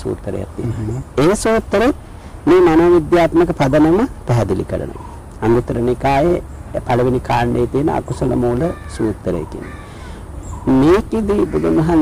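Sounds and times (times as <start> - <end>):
man speaking: 0.0 - 9.7, 10.6 - 12.0
bird calling: 0.5 - 1.4, 2.0 - 12.0.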